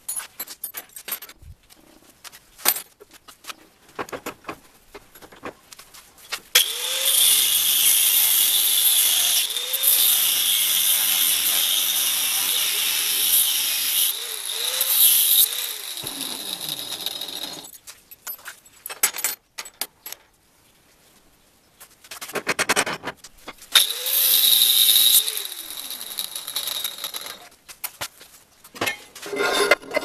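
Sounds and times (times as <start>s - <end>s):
angle grinder cutting metal: 6.6s - 17.7s, 23.8s - 27.5s
metal coil clinking in vise: 8.1s - 18.3s, 23.8s - 27.5s.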